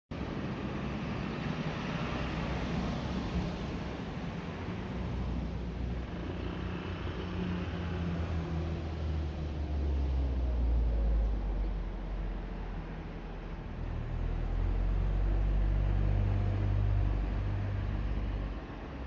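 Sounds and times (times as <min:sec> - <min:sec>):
steady traffic hum: 0:00.1 - 0:19.0.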